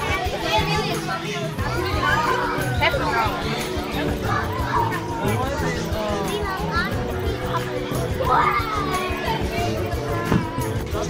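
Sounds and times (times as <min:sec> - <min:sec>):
background music with held notes: 0:00.0 - 0:11.0
children chattering: 0:00.0 - 0:11.0.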